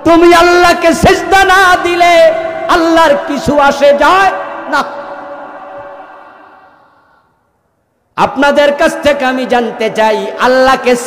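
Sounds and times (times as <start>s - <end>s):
man's voice over public address: 0.0s - 6.9s, 8.2s - 11.0s.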